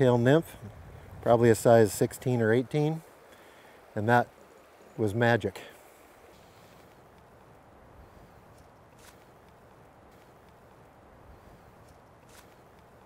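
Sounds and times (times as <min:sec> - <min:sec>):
faint steady hiss: 0:00.0 - 0:13.0
soft clicks: 0:07.0 - 0:07.3, 0:10.4 - 0:10.7.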